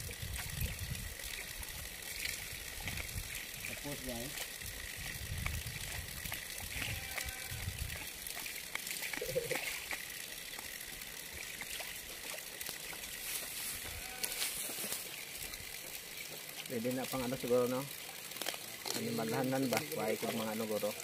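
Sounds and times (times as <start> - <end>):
water trickling and splashing: 0.0 - 21.0.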